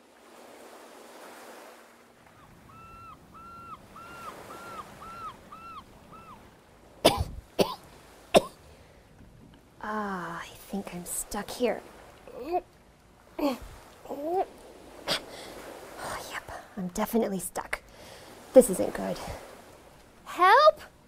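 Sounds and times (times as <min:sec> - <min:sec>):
surf washing on a beach: 0:00.0 - 0:16.8, 0:17.6 - 0:21.0
bird calling: 0:02.2 - 0:06.6
person coughing: 0:07.1 - 0:07.8.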